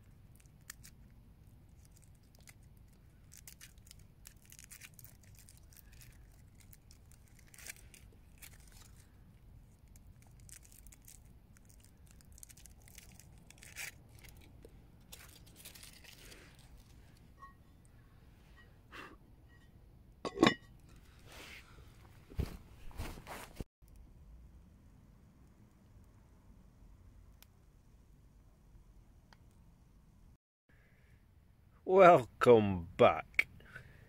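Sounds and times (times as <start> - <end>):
wrappers crinkling and tearing: 0.3 - 1.0, 1.7 - 17.0.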